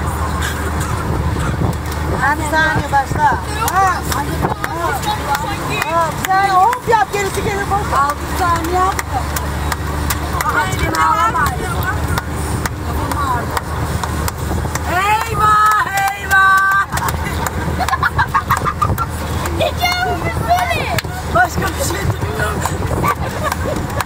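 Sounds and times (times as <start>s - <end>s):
moving car rumble: 0.0s - 24.0s
voices talking: 0.0s - 24.0s.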